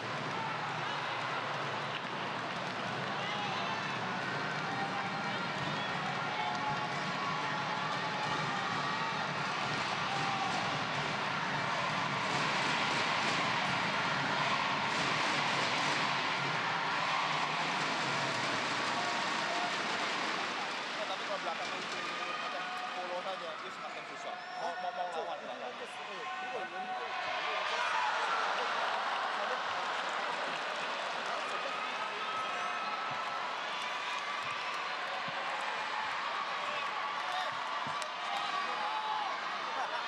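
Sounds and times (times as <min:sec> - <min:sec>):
crowd murmuring and chattering: 0:00.0 - 0:40.0.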